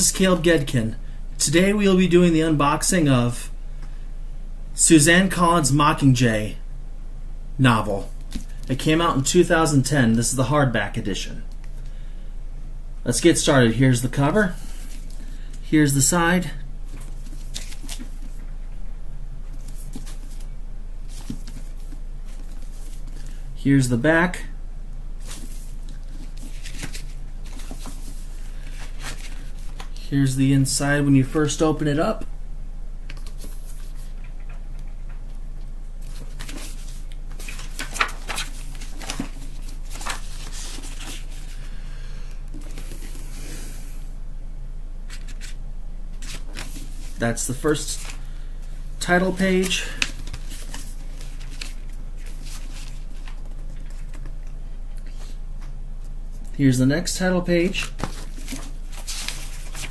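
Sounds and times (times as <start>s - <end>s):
low hum and hiss: 0.0s - 59.9s
book pages rustling: 8.0s - 8.7s, 14.5s - 15.4s, 16.9s - 18.4s, 19.5s - 23.4s, 25.2s - 31.6s, 33.1s - 35.2s, 36.0s - 41.8s, 42.5s - 43.5s, 45.1s - 45.6s, 46.2s - 56.5s, 57.6s - 59.9s.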